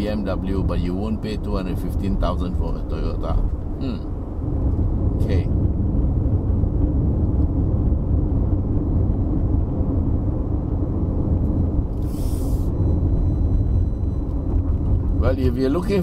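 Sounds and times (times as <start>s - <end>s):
car cabin road and engine rumble: 0.0s - 16.0s
brief hiss: 12.0s - 12.7s.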